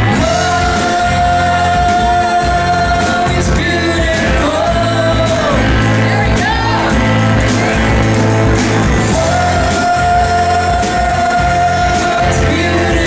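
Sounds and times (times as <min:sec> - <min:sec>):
drum kit with cymbal strokes: 0:00.0 - 0:13.0
electric bass: 0:00.0 - 0:13.0
electric guitar: 0:00.0 - 0:13.0.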